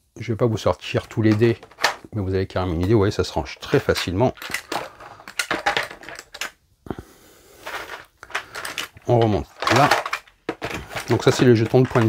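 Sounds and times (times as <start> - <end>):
game tokens clicking and clattering: 1.3 - 2.1, 3.7 - 6.6, 7.6 - 12.0
plastic tray knocking: 9.2 - 12.0.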